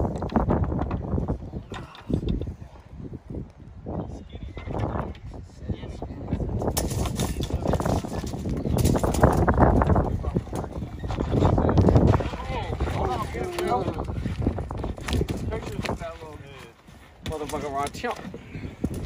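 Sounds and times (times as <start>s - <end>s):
wind rumble on microphone: 0.0s - 19.0s
people talking indistinctly: 1.4s - 19.0s.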